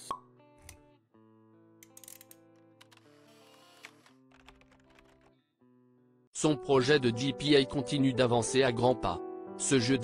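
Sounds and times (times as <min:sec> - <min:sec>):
background music with sustained notes: 0:00.0 - 0:10.0.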